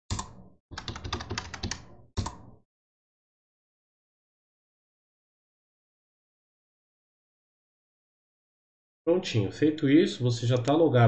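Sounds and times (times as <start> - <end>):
computer keyboard typing: 0.1 - 2.4.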